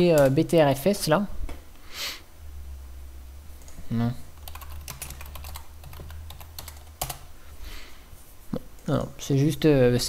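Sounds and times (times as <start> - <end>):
keyboard typing: 4.4 - 7.3.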